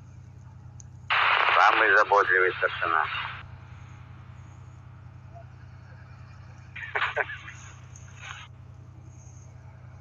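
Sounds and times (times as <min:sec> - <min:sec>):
low steady hum: 0:00.0 - 0:10.0
person speaking over radio static: 0:01.1 - 0:03.4, 0:06.8 - 0:07.6.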